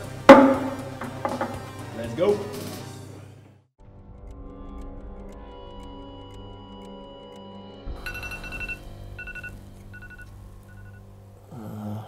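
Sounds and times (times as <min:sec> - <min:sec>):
music with steady ticking: 0:00.0 - 0:02.8, 0:03.8 - 0:11.5
high two-pitch electronic beep: 0:08.0 - 0:11.0.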